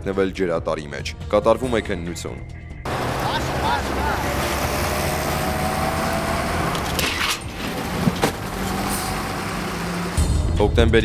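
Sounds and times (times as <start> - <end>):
road traffic: 2.9 - 10.4.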